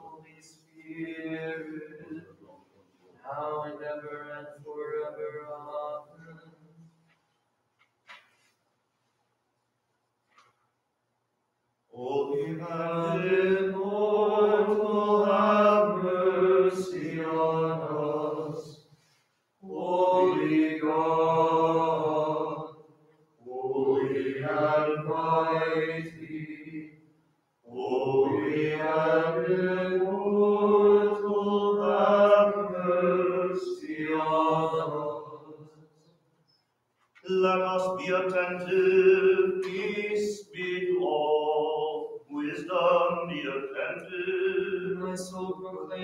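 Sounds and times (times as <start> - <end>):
voices singing liturgical chant: 0.0 - 6.6, 12.0 - 18.9, 19.6 - 27.0, 27.7 - 35.8, 37.2 - 46.0.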